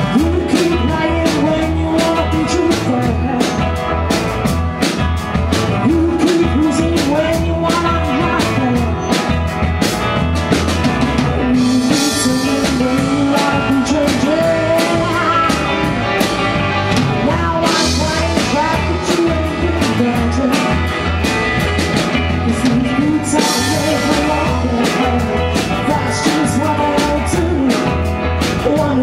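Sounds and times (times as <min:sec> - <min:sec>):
woman singing lead vocal: 0:00.0 - 0:04.1, 0:05.7 - 0:09.4, 0:11.4 - 0:16.0, 0:17.2 - 0:21.2, 0:22.4 - 0:29.0
live rock band playing: 0:00.0 - 0:29.0.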